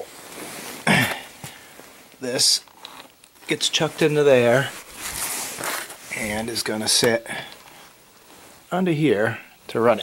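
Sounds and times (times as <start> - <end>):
man clearing throat: 0.8 - 1.3.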